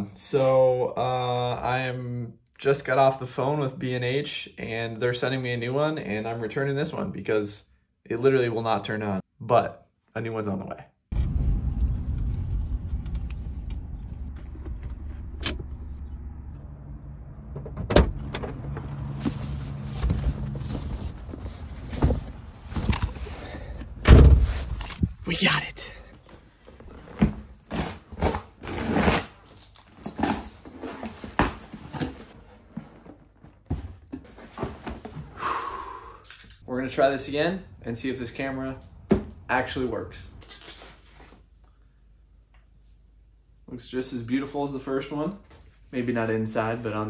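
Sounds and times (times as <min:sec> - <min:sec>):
car engine idling: 0:12.7 - 0:20.8
loud thunk: 0:24.0 - 0:24.6.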